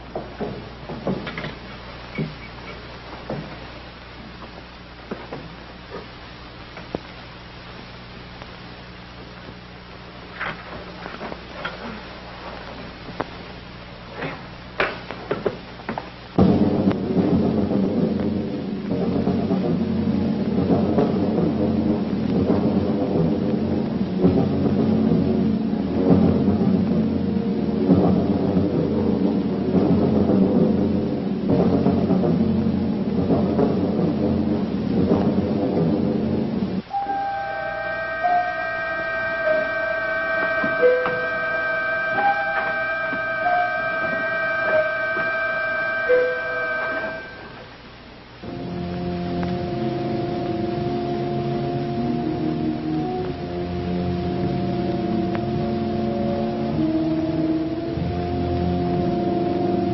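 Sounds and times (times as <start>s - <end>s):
thunder-like rumbling roll: 16.3s - 47.7s
organ-like chords: 36.3s - 47.8s, 48.4s - 59.9s
dramatic music: 36.9s - 47.6s.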